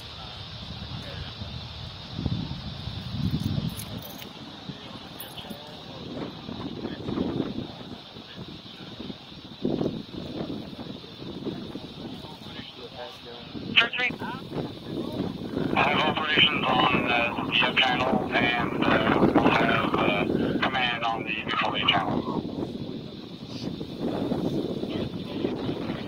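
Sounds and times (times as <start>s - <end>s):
muffled voices: 0.0s - 1.6s, 3.7s - 26.0s
two-way radio traffic: 4.2s - 26.0s.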